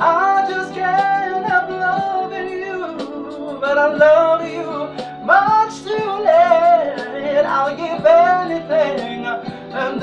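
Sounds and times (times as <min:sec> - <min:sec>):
backing track: 0:00.0 - 0:10.0
man singing: 0:00.0 - 0:10.0.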